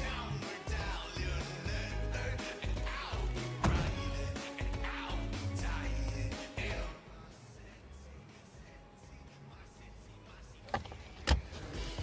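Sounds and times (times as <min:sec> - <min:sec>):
car sharp clunks: 0:03.6 - 0:04.0.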